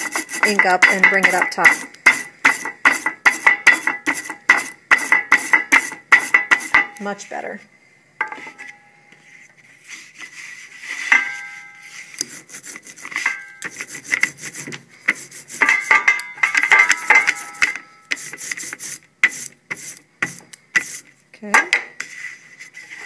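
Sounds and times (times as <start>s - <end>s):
rubber roller rubbing ink: 0.0s - 6.8s, 9.7s - 11.1s, 11.8s - 16.0s, 17.2s - 21.1s.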